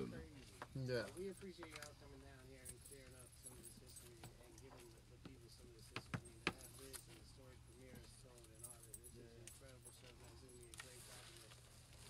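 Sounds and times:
faint distant talking: 0.0s - 12.0s.

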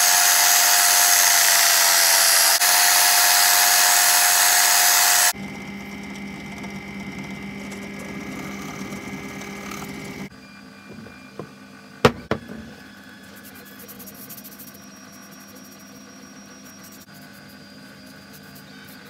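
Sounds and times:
electric belt sander running: 0.0s - 10.3s, 10.9s - 12.8s
drill press motor humming: 0.0s - 13.1s.

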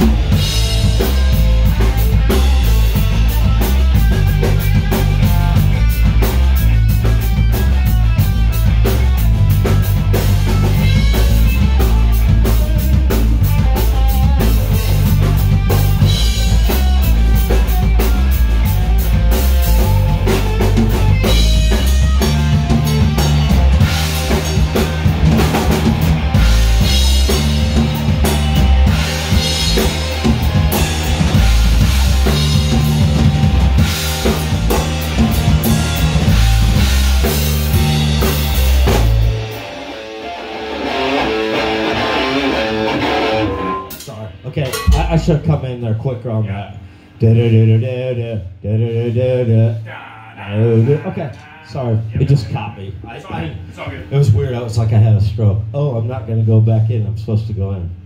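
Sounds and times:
electric guitar playing alone: 0.0s - 44.1s
rock band playing: 0.0s - 45.6s.

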